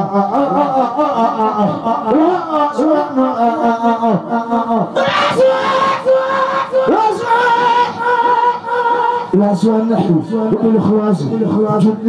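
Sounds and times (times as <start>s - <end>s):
man singing into a microphone: 0.0s - 10.9s.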